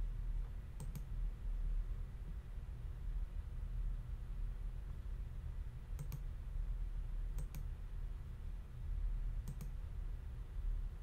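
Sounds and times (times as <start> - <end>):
low steady hum: 0.0 - 11.0
computer mouse clicks: 0.8 - 1.1, 5.9 - 6.3, 7.3 - 7.7, 9.4 - 9.8.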